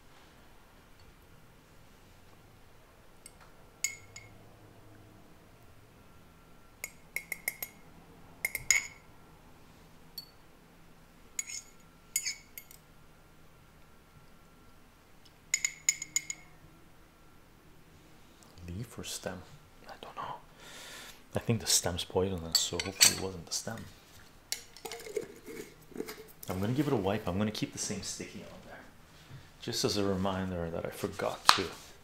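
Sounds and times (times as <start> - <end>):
metal spoon clinking in glass jar: 3.8 - 4.4, 6.8 - 7.8, 8.4 - 9.0, 10.2 - 10.4, 11.4 - 12.8, 15.5 - 16.5, 22.5 - 23.3.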